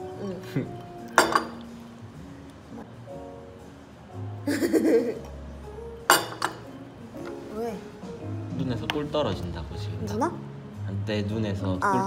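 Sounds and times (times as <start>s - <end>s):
glass clinking against ceramic saucer: 1.2s - 1.7s, 6.1s - 6.7s.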